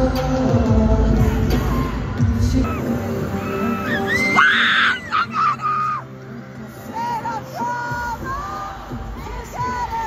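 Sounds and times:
crowd noise: 0.0 - 10.0
pop music: 0.0 - 10.0.

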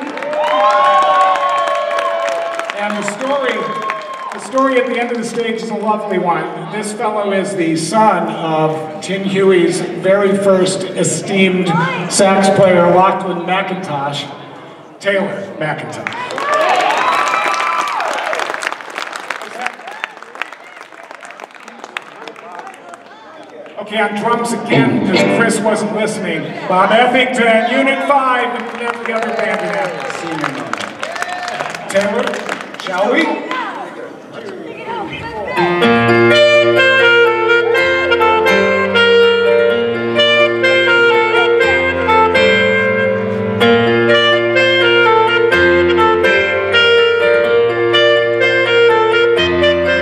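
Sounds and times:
audience applauding: 0.0 - 5.6, 16.0 - 23.8, 28.3 - 33.9
saxophone held notes: 35.5 - 50.0.

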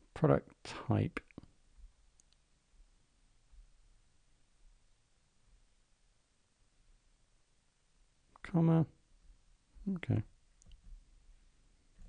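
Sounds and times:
person speaking: 0.0 - 1.5, 8.3 - 8.9, 9.8 - 10.3.

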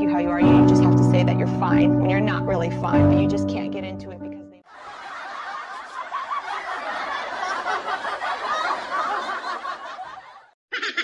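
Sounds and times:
laughter: 4.7 - 11.0.

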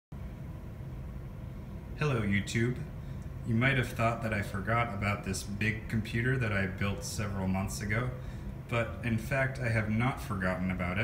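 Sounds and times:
low-pitched room hum: 0.1 - 11.0.

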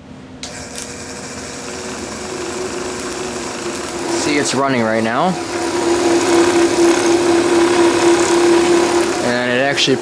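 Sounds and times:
motor high-pitched whine: 0.5 - 10.0.

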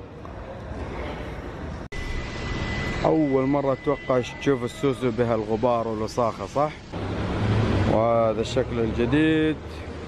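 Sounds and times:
thin steady high tone: 1.9 - 6.9.

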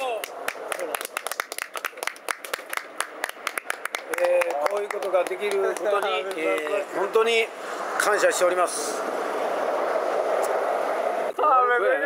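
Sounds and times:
people clapping: 0.0 - 6.8.

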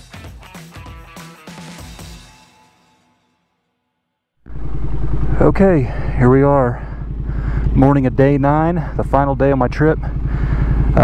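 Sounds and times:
music: 0.0 - 4.3
motorcycle engine idling: 4.5 - 11.0.

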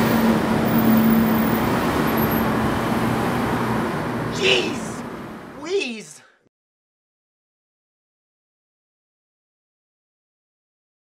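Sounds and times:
urban traffic roar: 0.0 - 6.2.

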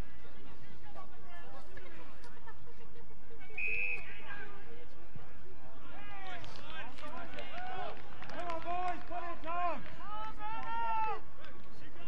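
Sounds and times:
people shouting outdoors: 9.5 - 11.2.

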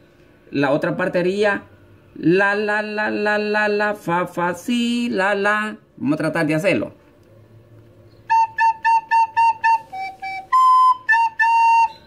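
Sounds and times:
soprano recorder playing: 8.3 - 12.0.

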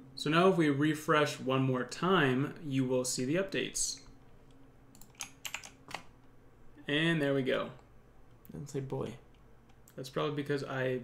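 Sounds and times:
keyboard keystrokes: 4.9 - 6.1.

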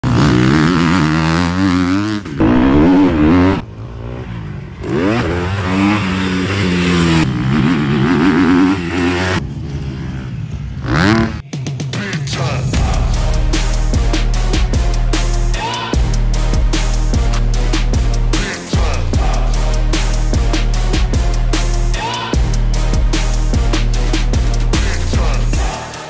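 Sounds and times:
motocross bike engine revving: 0.0 - 11.4.

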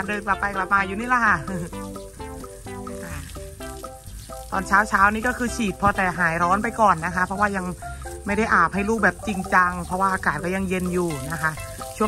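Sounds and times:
background music of melodic notes: 0.0 - 12.0
garden hose spraying water: 0.0 - 12.0.

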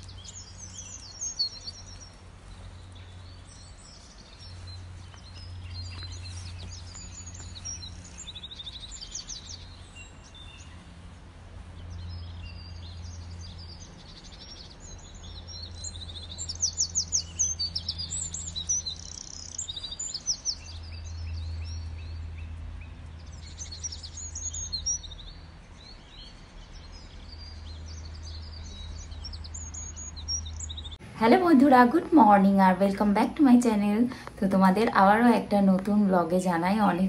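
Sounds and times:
low steady hum: 0.0 - 37.0
small birds chirping: 0.0 - 37.0.

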